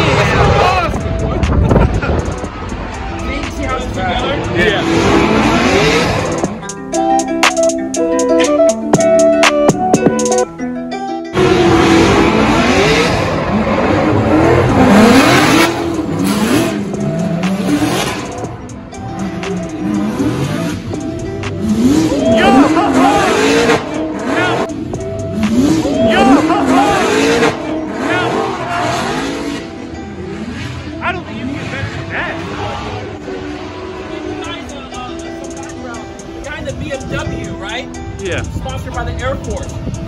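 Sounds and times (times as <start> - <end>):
car engines revving: 0.0 - 10.5, 11.3 - 40.0.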